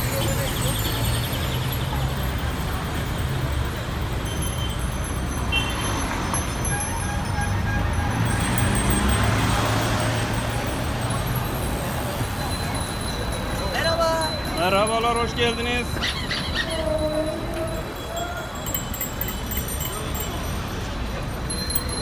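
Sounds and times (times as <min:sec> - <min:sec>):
street traffic rumble: 0:00.0 - 0:22.0.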